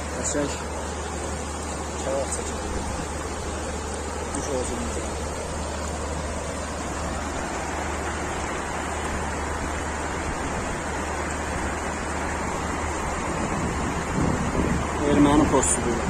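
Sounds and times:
river rushing over rocks: 0:00.0 - 0:16.0.

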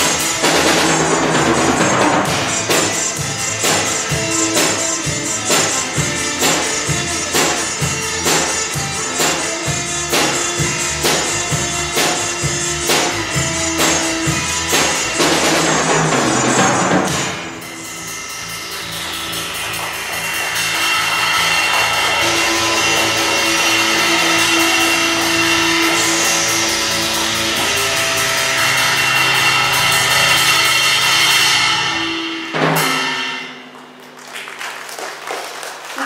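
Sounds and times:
rock band holding a chord: 0:00.0 - 0:33.8
cymbal wash: 0:00.0 - 0:33.9.

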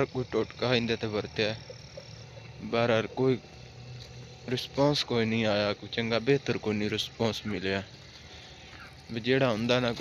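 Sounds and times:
man speaking: 0:09.1 - 0:10.0.

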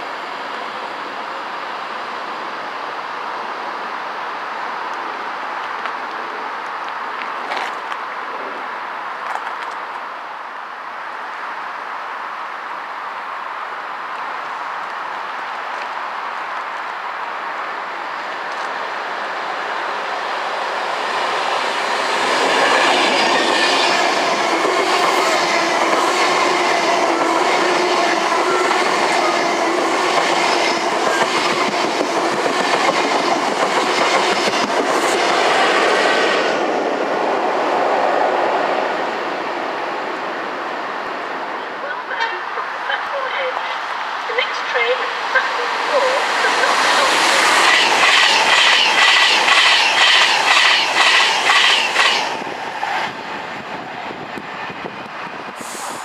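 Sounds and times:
train running hum: 0:00.0 - 0:56.0
train wheels clicking: 0:22.2 - 0:35.5, 0:45.7 - 0:52.9.

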